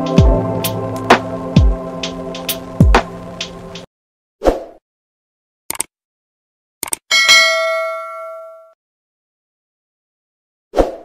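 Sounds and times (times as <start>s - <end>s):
bell ding: 7.1s - 8.8s.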